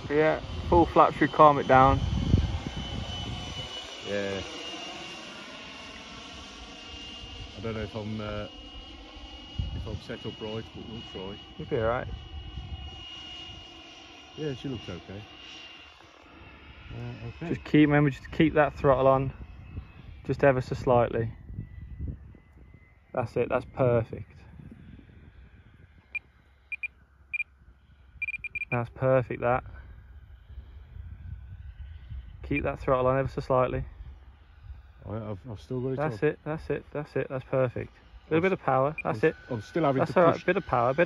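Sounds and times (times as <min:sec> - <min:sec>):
wind buffeting microphone: 0:00.0 - 0:03.7, 0:09.5 - 0:10.0, 0:21.3 - 0:22.9
model jet fan motor whine: 0:00.0 - 0:28.8, 0:29.8 - 0:41.0.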